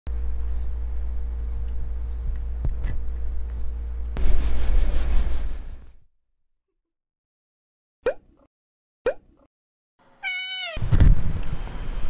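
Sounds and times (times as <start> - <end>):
cat meowing: 10.2 - 10.8.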